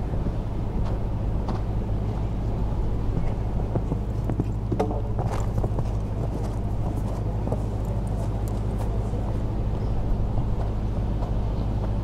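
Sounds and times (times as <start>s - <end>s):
low rumble with faint hum: 0.0s - 12.0s
hoof thuds on sand: 3.1s - 9.0s.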